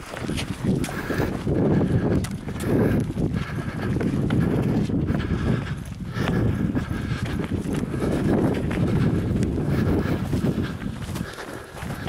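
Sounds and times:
running footsteps on rocky trail: 0:00.0 - 0:12.0
wind rumble on microphone: 0:00.0 - 0:12.0.

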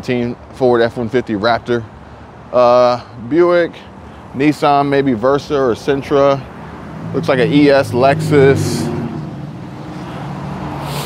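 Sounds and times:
traffic hum: 0:00.0 - 0:11.0
short hiss: 0:10.8 - 0:11.0.

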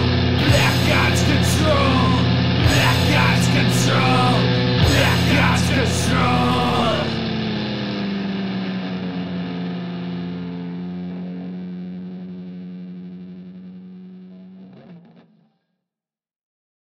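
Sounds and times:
distorted electric guitar chord: 0:00.0 - 0:15.4.

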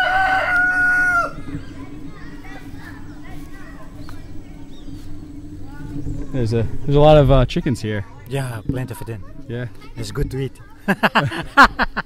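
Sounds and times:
rooster crowing: 0:00.0 - 0:01.5.

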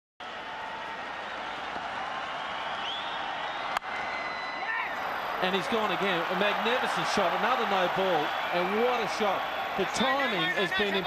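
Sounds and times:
stadium crowd din: 0:00.2 - 0:11.0
faint whistle: 0:02.4 - 0:04.6.

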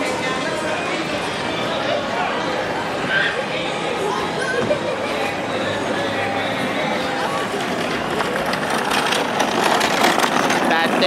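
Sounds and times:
dense rushing background noise: 0:00.0 - 0:11.0
people walking and talking: 0:00.0 - 0:11.0.

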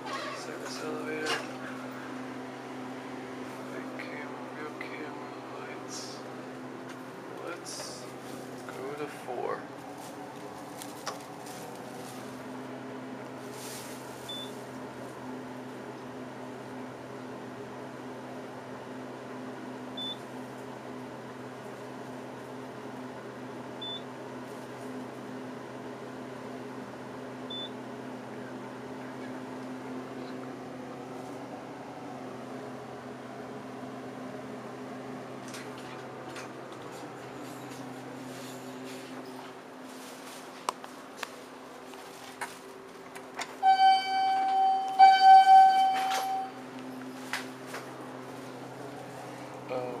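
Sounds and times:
elevator hum: 0:00.0 - 0:20.2, 0:26.4 - 0:40.4, 0:41.0 - 0:50.0
short high beeps: 0:43.6 - 0:46.6.

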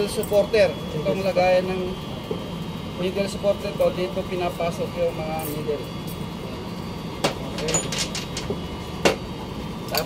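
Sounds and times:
metal parts knocking on workbench: 0:07.2 - 0:09.2.

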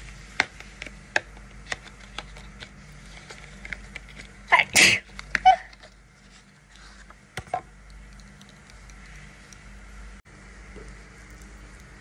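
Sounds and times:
person sneezing: 0:04.5 - 0:05.6.

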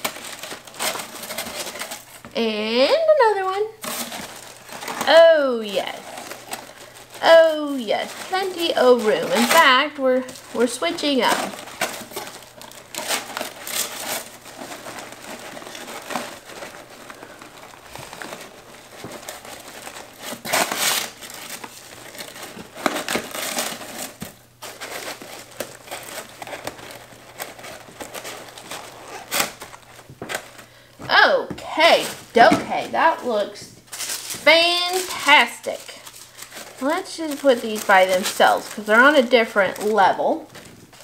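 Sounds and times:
paper crinkling and rustling: 0:00.0 - 0:02.4, 0:03.1 - 0:41.0.

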